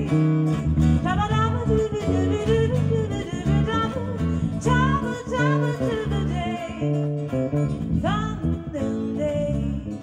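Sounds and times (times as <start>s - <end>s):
guitar accompaniment: 0.0s - 10.0s
woman singing into a microphone: 0.0s - 10.0s.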